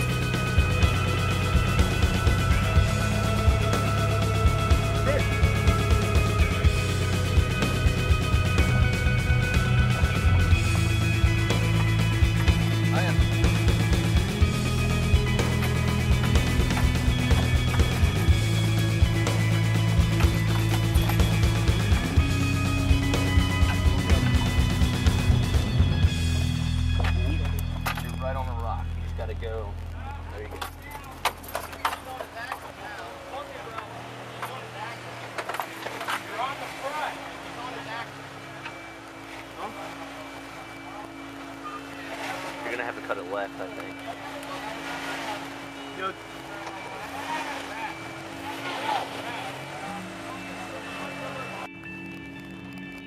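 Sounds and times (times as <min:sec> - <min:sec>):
people's voices: 0:00.0 - 0:25.5, 0:26.2 - 0:51.8
engine running at low revs: 0:00.0 - 0:30.6
music: 0:00.0 - 0:53.0.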